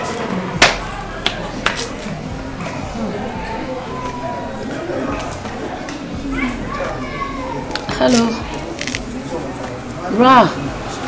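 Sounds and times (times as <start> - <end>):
children playing and calling: 0.0 - 11.0.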